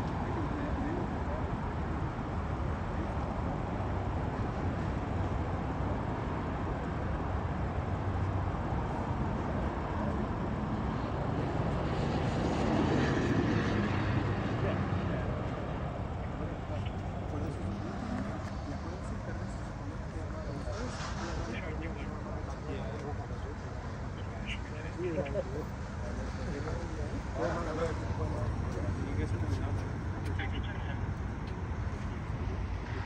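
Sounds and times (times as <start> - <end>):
traffic rumble: 0.0 - 33.0
vehicle passing: 10.6 - 33.0
murmured voices: 12.8 - 33.0.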